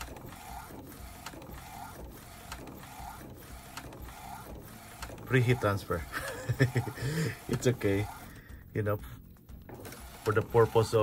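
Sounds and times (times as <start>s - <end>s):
printer clicks: 0.0s - 6.6s, 7.4s - 8.5s, 9.4s - 11.0s
printer carriage sweeping: 0.0s - 11.0s.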